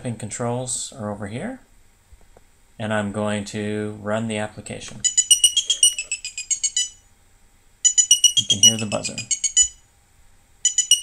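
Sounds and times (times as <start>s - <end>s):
high-pitched electronic beeps: 5.0s - 7.1s, 7.8s - 9.8s, 10.6s - 11.0s.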